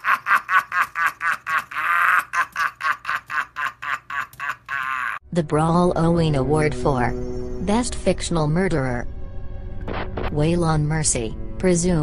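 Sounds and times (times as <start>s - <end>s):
man laughing loudly: 0.0s - 5.2s.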